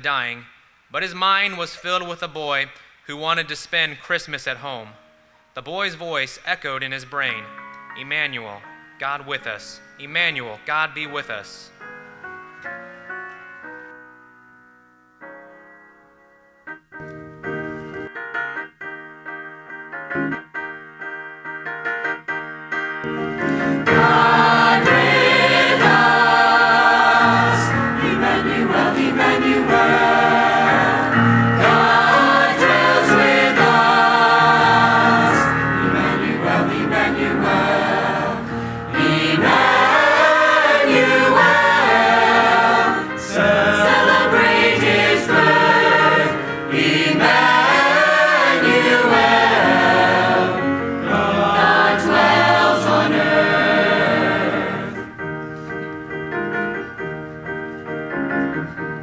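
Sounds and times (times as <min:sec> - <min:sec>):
choir singing: 0:23.4 - 0:55.2.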